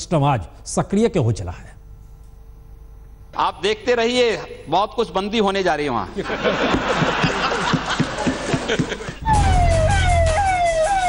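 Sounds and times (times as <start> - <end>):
electronic siren wailing: 9.2 - 11.0.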